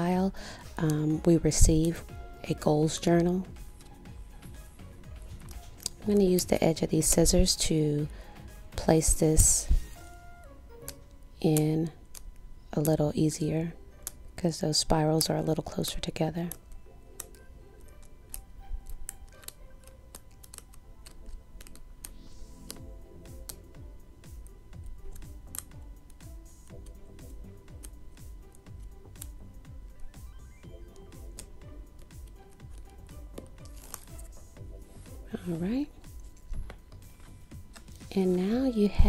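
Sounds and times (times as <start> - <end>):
soft background music: 0.0 - 39.0.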